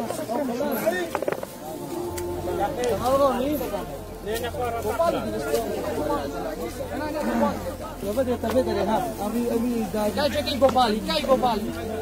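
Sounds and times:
people chatting: 0.0s - 12.0s
low steady hum: 1.5s - 12.0s.

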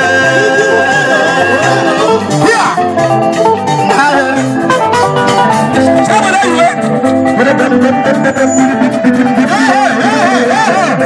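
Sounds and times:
amplified band music: 0.0s - 11.0s
person singing: 0.0s - 11.0s
repeating bass line: 0.0s - 11.0s.

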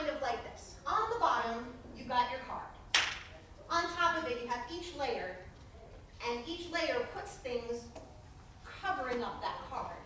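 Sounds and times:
sharp snap: 2.9s - 3.3s
woman speaking: 8.7s - 10.0s.

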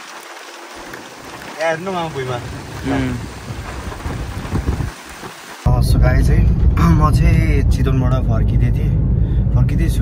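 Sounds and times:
heavy rain pouring: 0.0s - 7.3s
low rumble: 5.7s - 10.0s.

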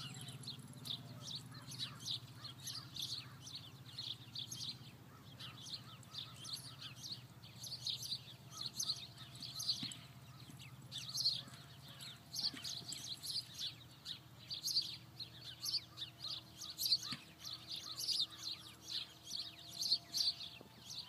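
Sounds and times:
small birds chirping and twittering: 0.0s - 21.0s.

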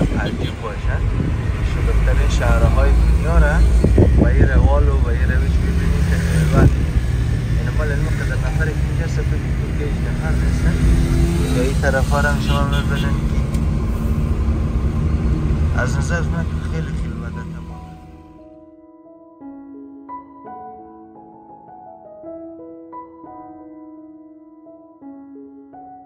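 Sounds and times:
voices: 0.0s - 6.8s, 7.6s - 13.6s
car engine and road rumble: 0.0s - 18.4s.

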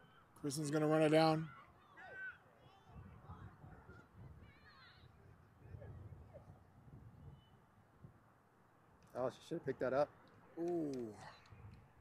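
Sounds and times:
wind rumbling on microphone: 2.9s - 8.2s.

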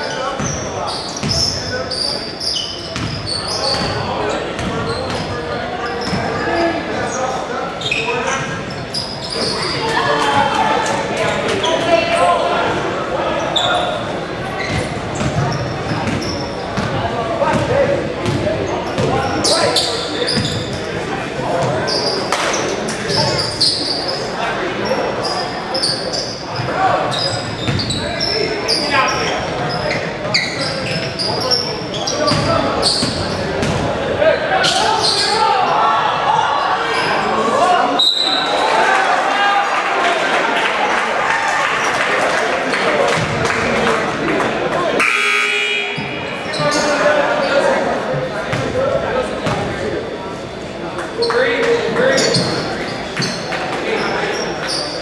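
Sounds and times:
people calling out: 44.9s - 47.2s.

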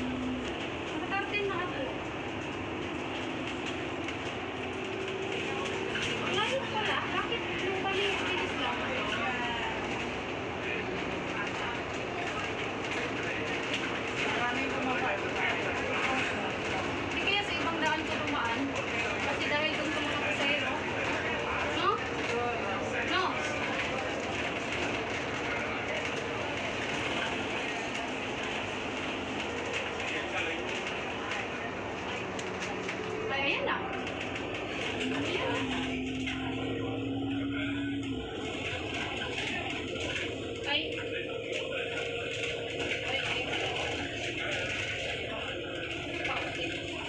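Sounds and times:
bus engine and road drone: 0.0s - 47.0s
passengers chattering: 0.0s - 47.0s.

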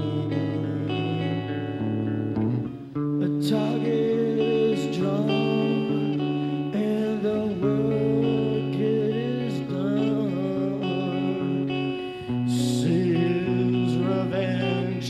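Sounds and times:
man singing: 0.0s - 2.1s, 3.2s - 15.0s
electric guitar chords: 0.0s - 15.0s.

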